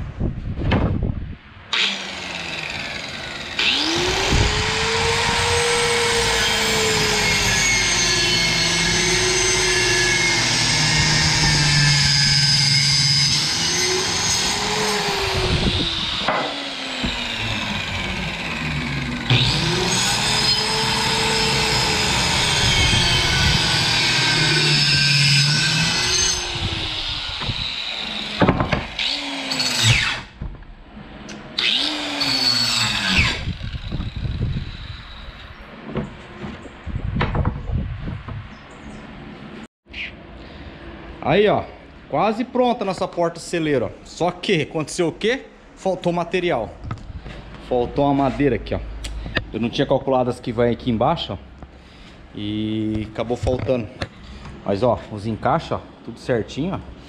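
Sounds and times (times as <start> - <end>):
circular saw cutting wood: 1.7 - 30.4, 31.2 - 35.6.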